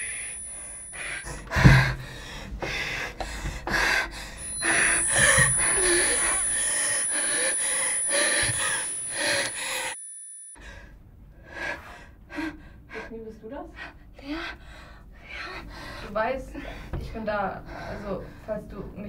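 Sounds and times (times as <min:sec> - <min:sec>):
high-pitched ringing tone: 0:00.0 - 0:01.9, 0:04.3 - 0:10.6.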